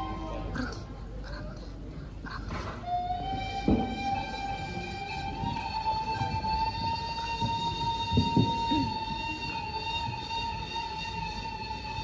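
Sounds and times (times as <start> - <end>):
wind instrument long note: 0.0 - 0.6, 2.8 - 12.0.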